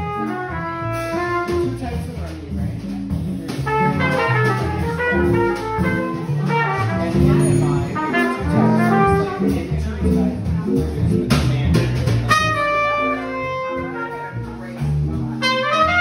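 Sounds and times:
trumpet: 0.0s - 2.2s, 3.4s - 9.9s, 12.2s - 16.0s
bass notes: 0.0s - 16.0s
chatter of people: 0.0s - 16.0s
drums: 0.0s - 16.0s.

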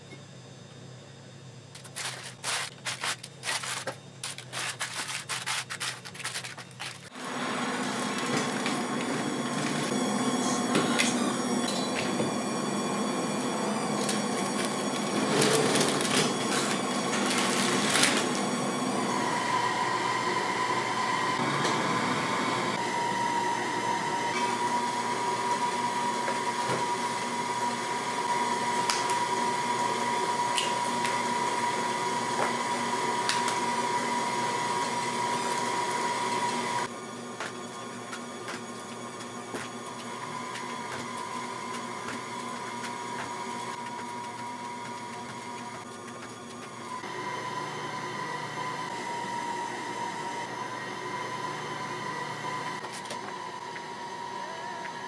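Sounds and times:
kitchen appliance motor running: 1.8s - 55.0s.

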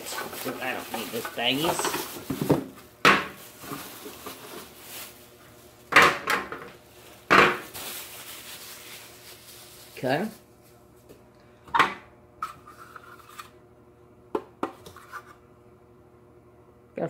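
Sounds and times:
handling rustle: 0.0s - 5.9s, 6.9s - 10.8s.

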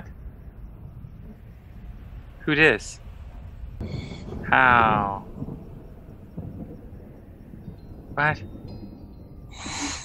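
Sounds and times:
low steady soundtrack rumble: 0.0s - 9.6s.

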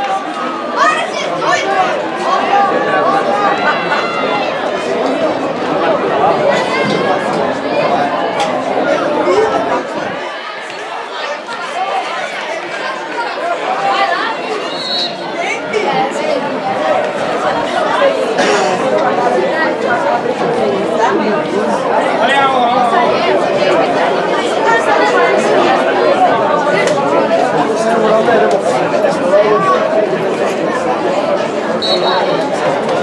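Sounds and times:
spectators chattering: 0.0s - 33.0s.

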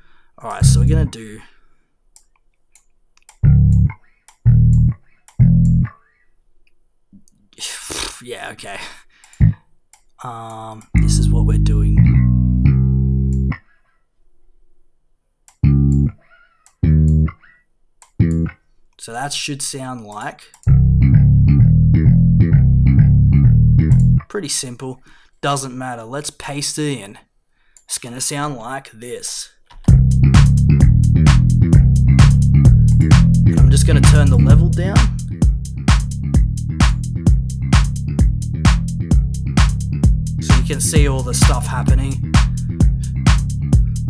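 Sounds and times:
slap bass notes: 0.5s - 1.1s, 3.4s - 5.9s, 9.4s - 9.6s, 11.0s - 13.6s, 15.6s - 16.2s, 16.8s - 17.4s, 18.2s - 18.6s, 20.7s - 24.2s, 29.8s - 44.0s.

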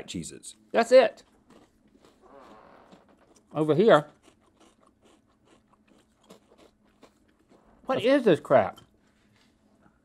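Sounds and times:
crackers crunching: 1.1s - 9.6s.

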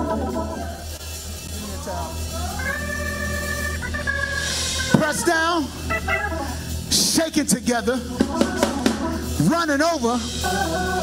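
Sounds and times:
organ chords: 0.0s - 11.0s.

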